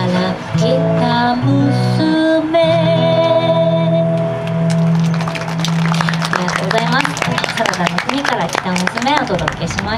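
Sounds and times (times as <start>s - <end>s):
hand claps: 4.4s - 9.9s.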